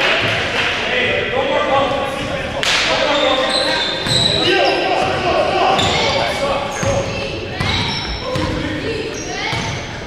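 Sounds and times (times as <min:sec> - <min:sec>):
players' voices: 0:00.0 - 0:10.0.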